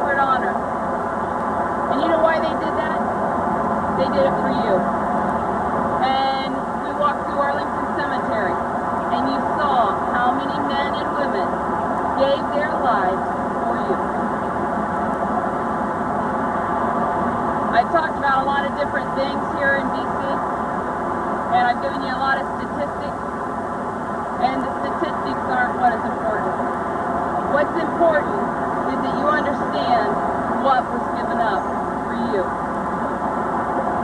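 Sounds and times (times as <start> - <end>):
indistinct voices: 0.0 - 0.6, 1.9 - 3.1, 4.0 - 4.9, 6.0 - 11.6, 12.2 - 14.1, 17.8 - 20.4, 21.5 - 23.2, 24.4 - 26.5, 27.5 - 32.5
dense background hum: 0.0 - 34.0.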